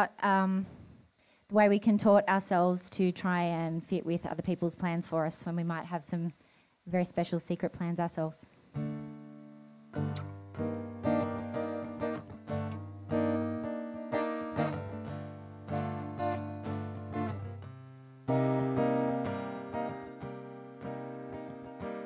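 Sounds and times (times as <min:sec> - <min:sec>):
acoustic guitar chords strummed: 0:08.7 - 0:22.0.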